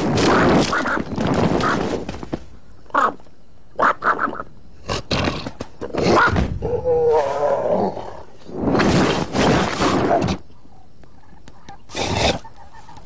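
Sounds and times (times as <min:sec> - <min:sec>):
cartoon lion roaring: 0:06.0 - 0:08.3.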